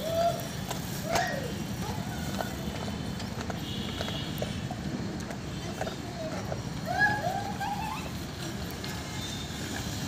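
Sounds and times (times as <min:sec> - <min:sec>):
bicycle rolling over tiles: 0:00.0 - 0:10.0.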